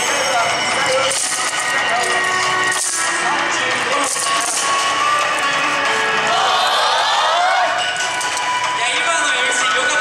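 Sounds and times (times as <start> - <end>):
wooden clappers clacking: 0.8 - 6.3, 7.8 - 9.9.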